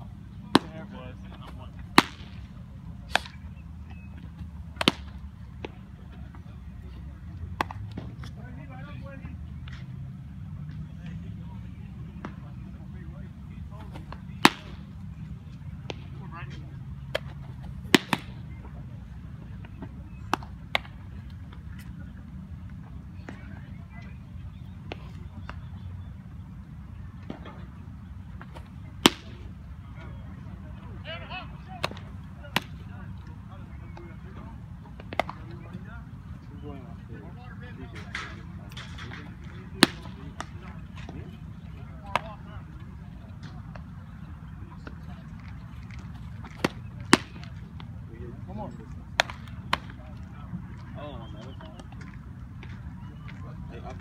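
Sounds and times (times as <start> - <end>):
faint distant voices: 0.0 - 54.0
baseball popping into leather mitt: 1.9 - 2.4, 4.8 - 5.2, 14.1 - 14.8, 17.9 - 18.4, 35.0 - 35.4.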